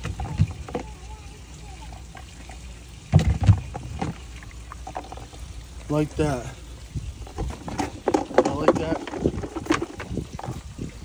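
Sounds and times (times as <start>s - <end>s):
water sloshing in a bucket: 0.0s - 11.0s
wind rumble on microphone: 6.8s - 11.0s.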